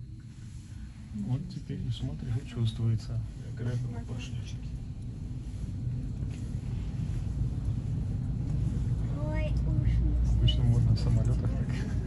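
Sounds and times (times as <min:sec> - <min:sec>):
elevator low rumble: 0:00.0 - 0:12.0.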